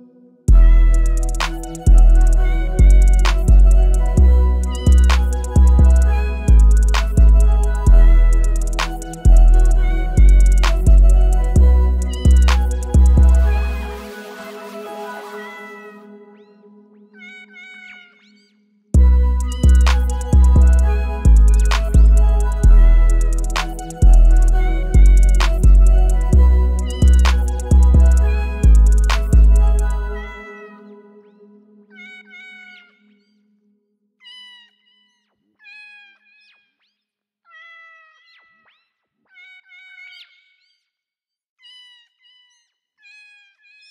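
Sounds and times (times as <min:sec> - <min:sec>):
heavy bass and drum beat: 0:00.5 - 0:13.8, 0:19.0 - 0:30.0
sustained music chords: 0:00.5 - 0:16.1, 0:19.0 - 0:30.4
pitch-gliding cat meows: 0:17.1 - 0:18.3, 0:31.9 - 0:33.1
cat meowing: 0:31.9 - 0:33.0.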